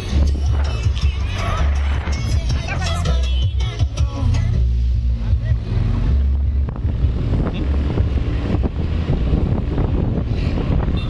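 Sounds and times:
wind rumble on microphone: 0.0s - 3.2s, 4.4s - 11.0s.

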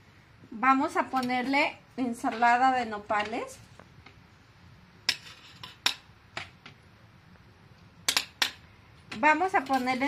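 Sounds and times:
metal spoon clinking on dishes: 8.1s - 10.0s.

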